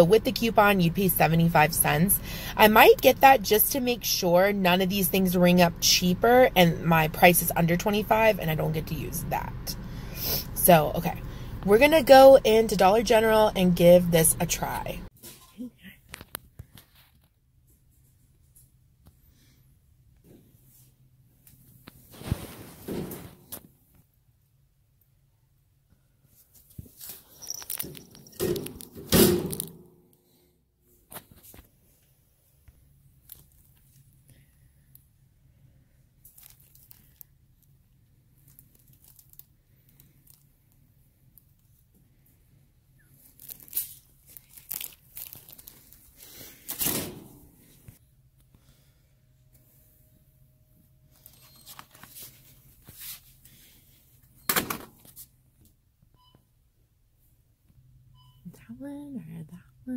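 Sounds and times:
steady low hum: 0.0 - 15.1.

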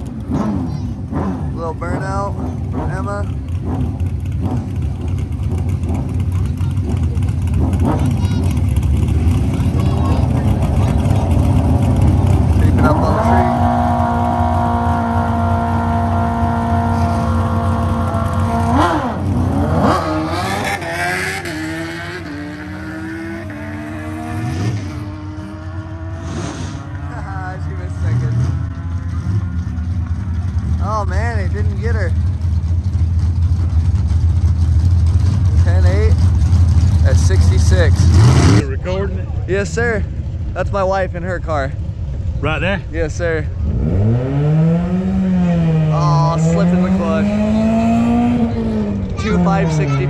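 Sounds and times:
car engine revving: 0.0 - 50.0
motorcycle engine revving: 0.0 - 50.0.

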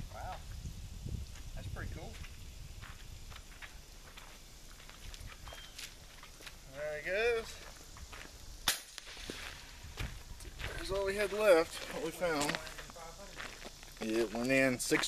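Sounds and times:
footsteps on gravel: 1.3 - 6.8, 7.4 - 15.0.

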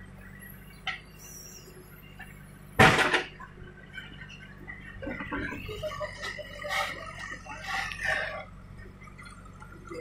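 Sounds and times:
diesel engine running: 0.0 - 10.0.

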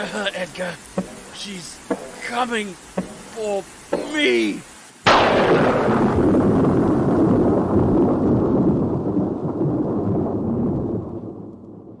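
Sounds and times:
thunderclap: 5.0 - 12.0
rolling thunder rumble: 5.1 - 12.0.

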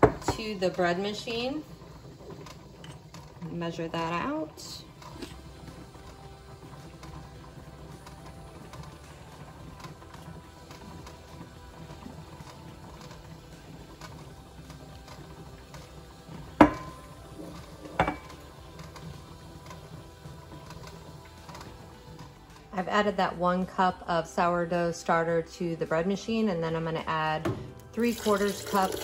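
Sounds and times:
faint background music: 0.0 - 29.0
glass jar knocking glass cup: 16.6 - 17.0, 18.0 - 18.3
thick starter pouring: 27.8 - 29.0.

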